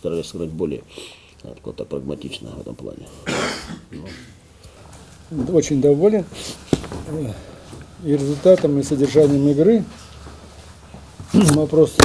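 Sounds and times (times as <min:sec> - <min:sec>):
man clearing throat: 0:03.2 - 0:04.4.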